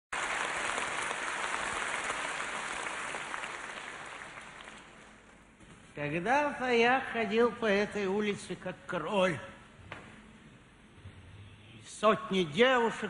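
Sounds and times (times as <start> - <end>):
audience applauding: 0.1 - 5.2.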